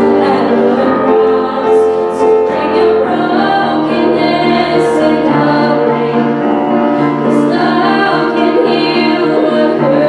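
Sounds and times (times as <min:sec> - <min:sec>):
small band playing: 0:00.0 - 0:10.0
young female voices singing: 0:00.0 - 0:10.0.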